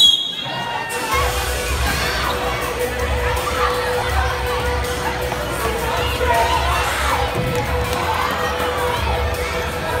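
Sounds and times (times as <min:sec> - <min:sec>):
children shouting and cheering: 0:00.4 - 0:10.0.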